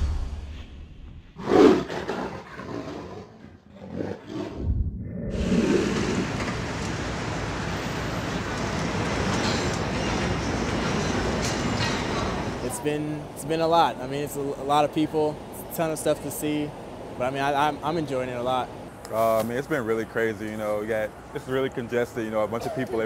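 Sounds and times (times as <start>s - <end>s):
big cat roaring: 1.4s - 6.4s
city street traffic: 5.6s - 23.0s.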